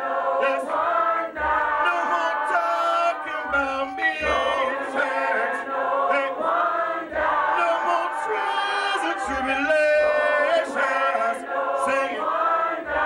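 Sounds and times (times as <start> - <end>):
group singing in harmony: 0.0 - 13.0
man singing into a microphone: 1.8 - 6.4, 7.5 - 12.2.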